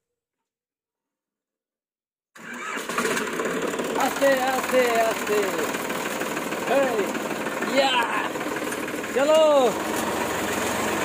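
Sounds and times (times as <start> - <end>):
tractor diesel engine starting: 2.4 - 11.0.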